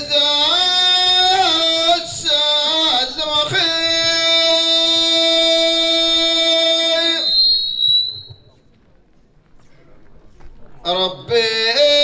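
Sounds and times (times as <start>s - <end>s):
man singing into microphone: 0.0s - 7.5s, 10.8s - 12.0s
high feedback whistle: 6.3s - 8.6s.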